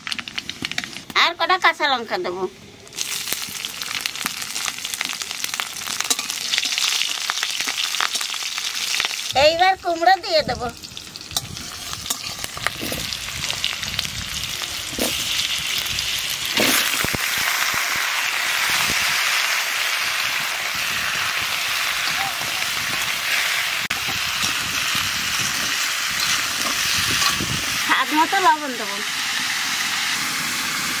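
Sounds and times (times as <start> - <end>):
food sizzling in hot oil: 0.0 - 2.1, 2.8 - 31.0.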